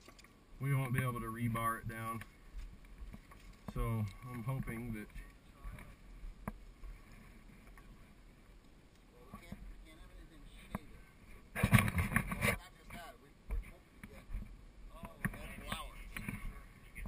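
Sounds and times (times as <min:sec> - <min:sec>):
panel scraping on rocky ground: 0:00.0 - 0:08.0, 0:10.7 - 0:16.7.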